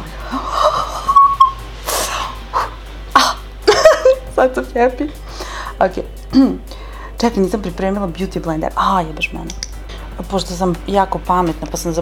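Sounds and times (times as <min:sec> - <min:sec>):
woman laughing: 0:00.3 - 0:01.6, 0:03.2 - 0:04.3.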